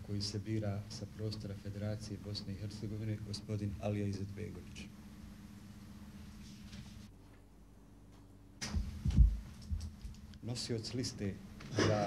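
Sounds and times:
faint steady hum: 0.0s - 12.0s
dull low thumps: 8.7s - 10.0s.

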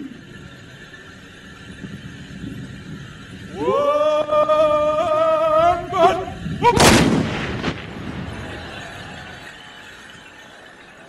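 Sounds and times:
rumbling echo: 1.7s - 10.6s
horsemen shouting: 3.5s - 7.0s
musket volley: 6.7s - 9.4s.

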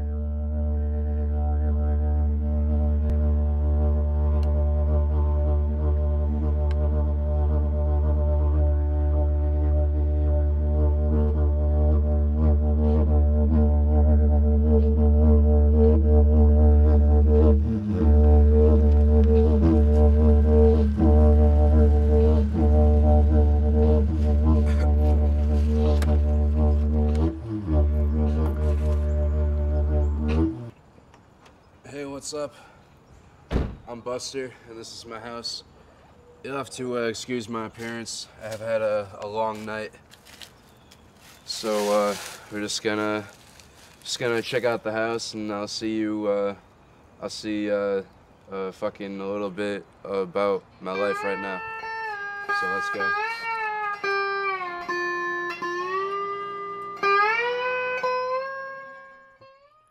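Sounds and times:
didgeridoo low drone: 0.0s - 30.8s.

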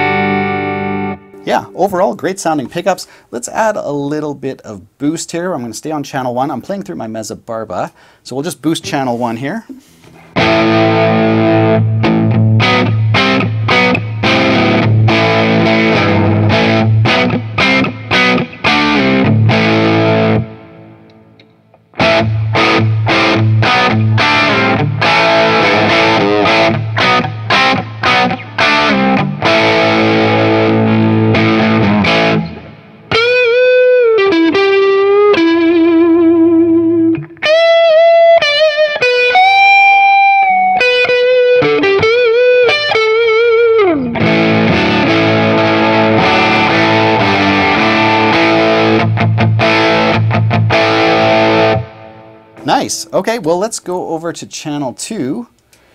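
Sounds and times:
electric guitar lead with bends: 0.0s - 2.3s, 9.8s - 52.7s
electric guitar strummed chords: 0.0s - 2.5s, 10.1s - 53.0s.

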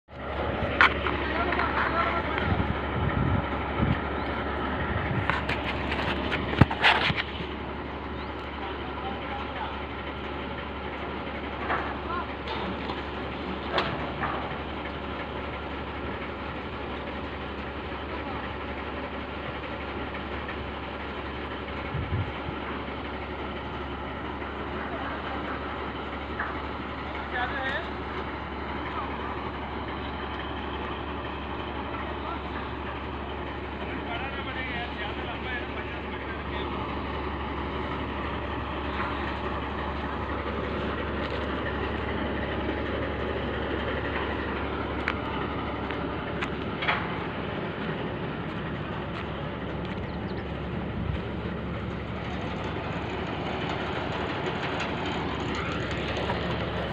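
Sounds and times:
diesel engine running: 0.0s - 56.9s.

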